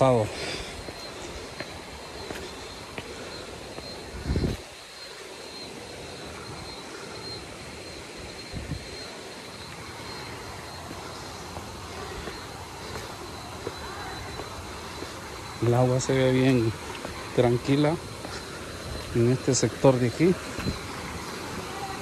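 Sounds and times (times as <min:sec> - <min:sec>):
waterfall rushing water: 0:00.0 - 0:22.0.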